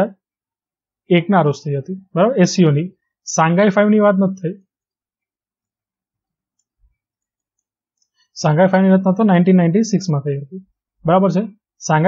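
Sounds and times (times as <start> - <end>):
person speaking: 1.1 - 4.8.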